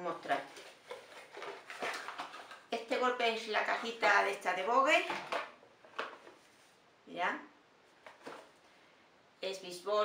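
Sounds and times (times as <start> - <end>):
person speaking: 0.0 - 0.7, 2.7 - 5.4, 9.4 - 10.0.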